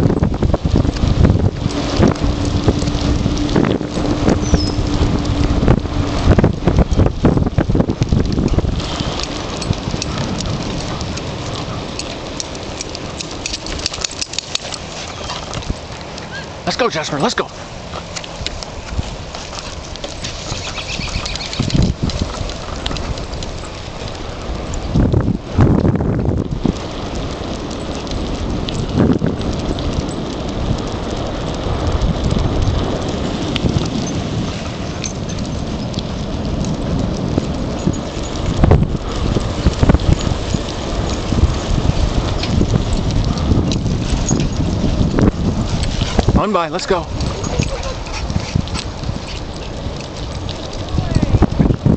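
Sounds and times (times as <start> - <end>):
bicycle rolling on asphalt: 0.0 - 51.9
wind rumbling on microphone: 0.0 - 51.9.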